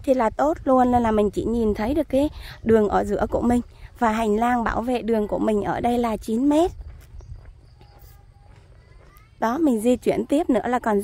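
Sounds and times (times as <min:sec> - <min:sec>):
wind on microphone: 0:00.0 - 0:08.3
faint footsteps on pavement: 0:00.0 - 0:11.0.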